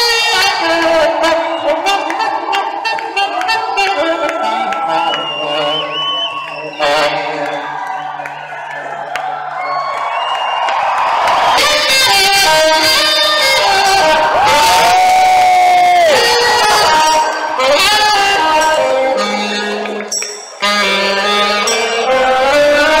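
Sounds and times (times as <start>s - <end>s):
live rock band playing: 0.0s - 7.8s, 11.4s - 23.0s
audience cheering: 0.0s - 21.8s.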